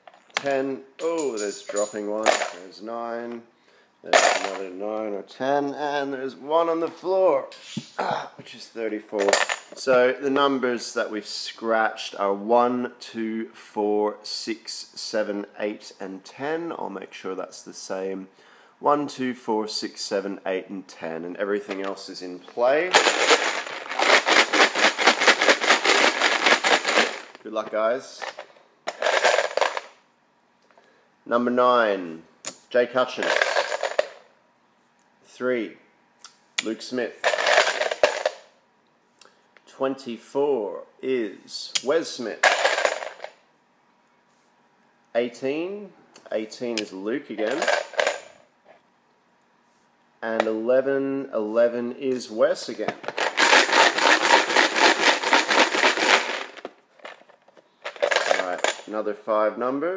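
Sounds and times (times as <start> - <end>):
raffle pieces rattling in plastic box: 22.8 - 27.4, 28.2 - 30.0, 33.2 - 34.2, 37.2 - 38.4, 42.4 - 43.4, 47.4 - 48.3, 52.9 - 58.9.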